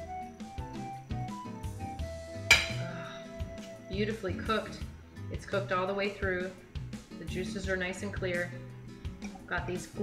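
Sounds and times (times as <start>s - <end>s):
cutlery clinking on a plate: 2.5s - 2.8s.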